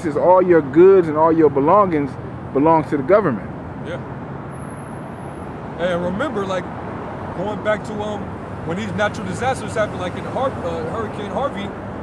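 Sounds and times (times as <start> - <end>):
traffic rumble: 0.0 - 12.0
man's voice: 5.8 - 6.6, 7.4 - 11.7.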